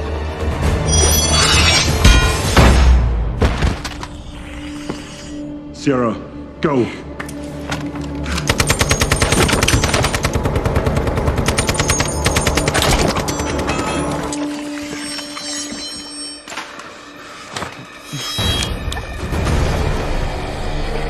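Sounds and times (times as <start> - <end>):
film score: 0.0 - 21.0
rapid automatic gunfire: 8.5 - 13.1.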